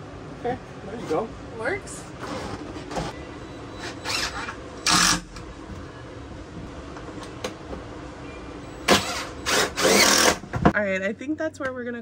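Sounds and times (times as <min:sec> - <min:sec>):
cordless power tool bursts: 0:08.9 - 0:10.4.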